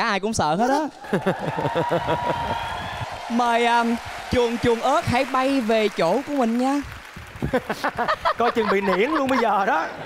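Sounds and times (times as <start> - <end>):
audience laughing: 1.0 - 2.7, 7.4 - 10.0.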